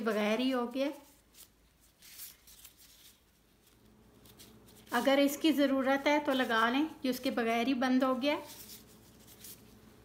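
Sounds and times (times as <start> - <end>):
plastic gloves crinkling: 0.0 - 10.0.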